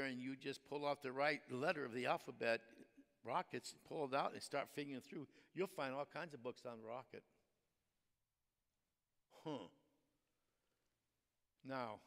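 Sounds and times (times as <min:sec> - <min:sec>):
man's musing hmm vocalization: 0:09.3 - 0:09.8.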